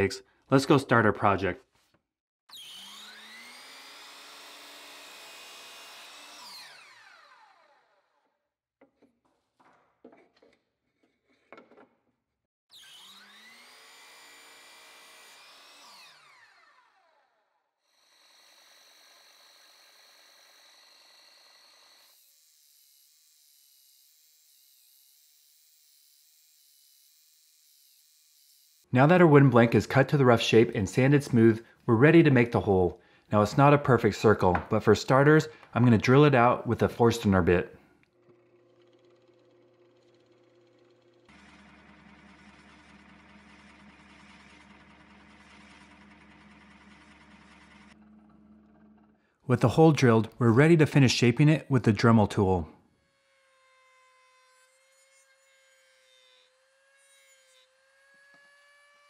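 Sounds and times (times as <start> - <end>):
drill boring into wood: 2.5 - 8.2, 12.7 - 28.9, 38.0 - 49.2.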